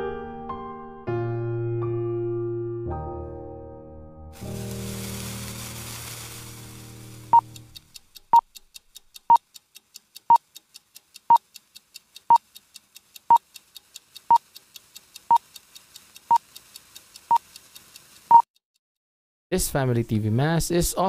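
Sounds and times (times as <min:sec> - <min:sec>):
hiss: 0:04.4 - 0:07.4
faint steady ticking: 0:04.4 - 0:18.7.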